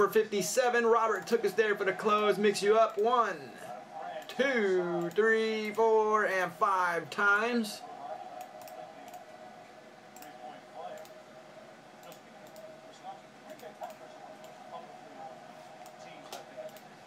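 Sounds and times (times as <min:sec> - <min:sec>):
faint steady hum: 0:00.0 - 0:17.0
computer mouse clicks: 0:08.4 - 0:09.2, 0:10.1 - 0:11.2, 0:12.0 - 0:12.7, 0:13.5 - 0:14.6, 0:15.8 - 0:16.9.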